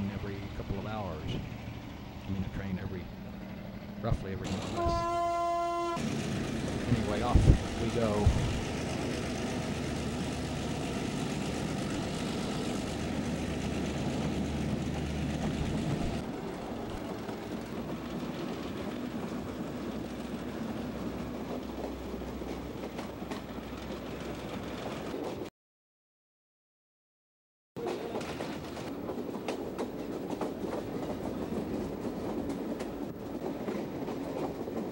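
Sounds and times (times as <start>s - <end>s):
diesel train engine drone: 0.0s - 25.4s
rail noise: 0.0s - 25.5s, 27.8s - 34.9s
train clicks: 0.4s - 25.5s, 27.8s - 34.9s.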